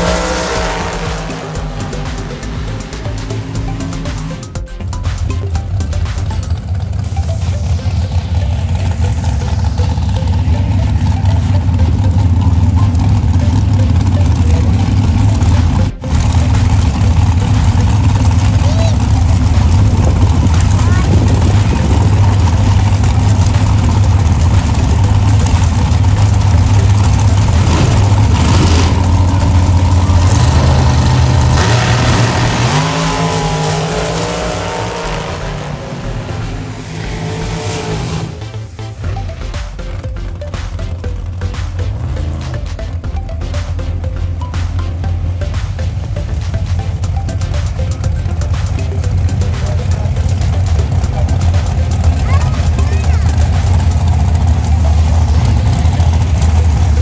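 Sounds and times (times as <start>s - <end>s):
dragster engines running: 0.0s - 57.0s.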